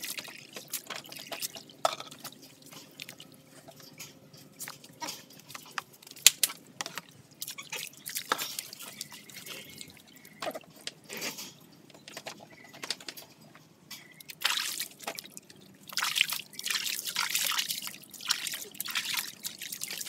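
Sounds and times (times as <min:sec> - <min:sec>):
water splashing in basin: 0:00.0 - 0:03.3, 0:05.5 - 0:10.9, 0:14.2 - 0:20.0.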